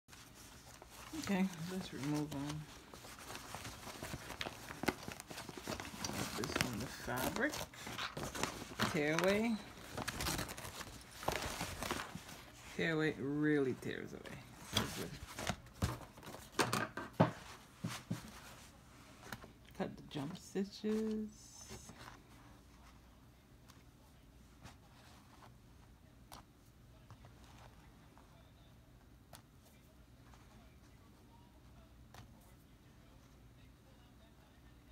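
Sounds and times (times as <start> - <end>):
paper-like rustling: 0.1 - 12.8, 14.5 - 16.6.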